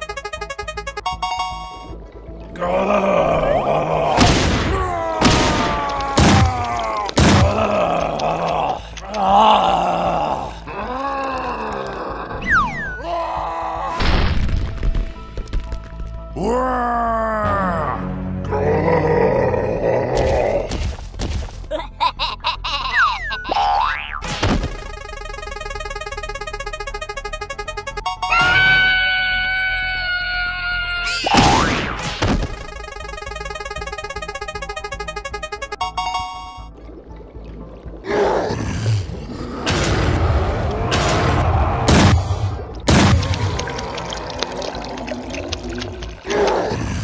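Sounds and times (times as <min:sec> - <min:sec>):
prize wheel ticking: 0:00.0 - 0:01.9, 0:24.7 - 0:28.5, 0:32.5 - 0:36.7
cartoon boing pitch glide: 0:00.0 - 0:02.0, 0:23.1 - 0:28.9, 0:31.4 - 0:36.8
background music: 0:00.0 - 0:44.4
creature groaning and grunting: 0:02.6 - 0:12.4, 0:16.4 - 0:20.8, 0:38.0 - 0:41.9, 0:46.2 - 0:47.0.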